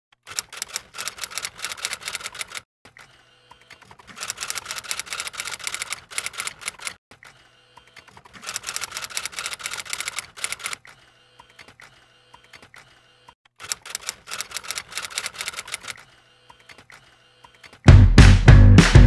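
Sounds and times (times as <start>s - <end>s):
rapid keyboard typing: 0.3s - 10.9s, 13.6s - 16.9s.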